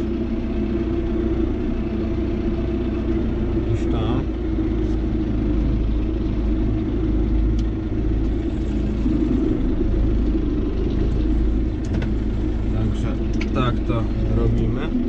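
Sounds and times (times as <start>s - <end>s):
tractor diesel engine running: 0.0s - 15.0s.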